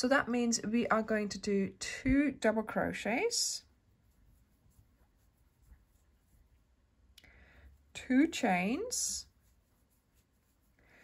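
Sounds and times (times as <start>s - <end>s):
yarn scratching over crochet hook: 7.9s - 10.8s.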